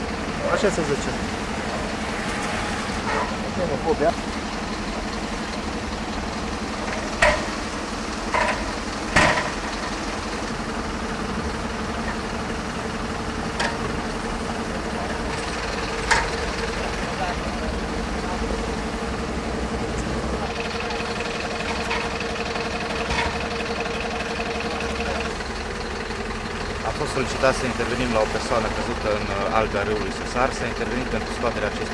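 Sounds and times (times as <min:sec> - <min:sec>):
fire truck engine idling: 0:00.0 - 0:31.9.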